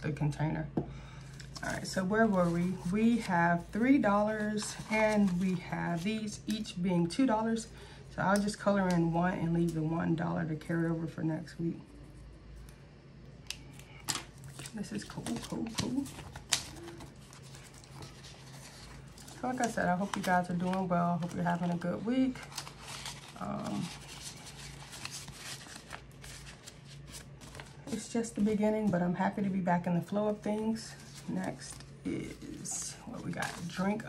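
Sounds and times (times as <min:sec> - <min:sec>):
paper bills rustling: 0:01.4 - 0:06.5, 0:13.8 - 0:28.6, 0:30.2 - 0:34.0.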